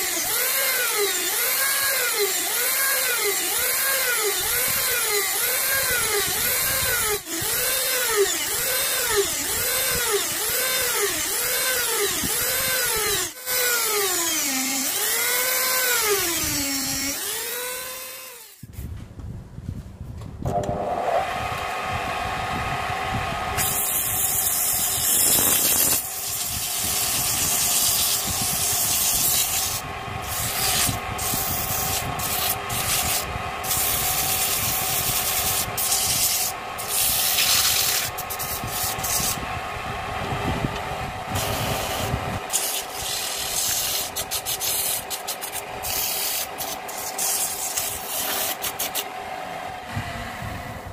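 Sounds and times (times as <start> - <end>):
rotary tool whining on wood: 0.0 - 18.7, 22.7 - 39.6, 40.3 - 50.9
sandpaper rubbing spinning wood: 23.6 - 39.4, 41.4 - 49.1.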